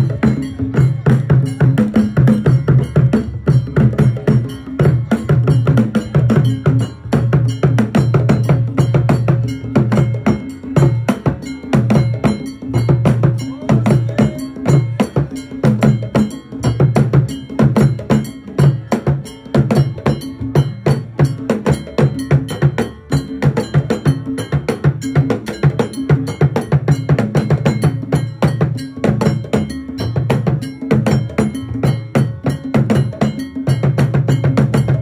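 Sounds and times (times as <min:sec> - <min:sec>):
barrel drums in fast rhythm: 0:00.0 - 0:35.0
ringing metal bell: 0:00.0 - 0:35.0.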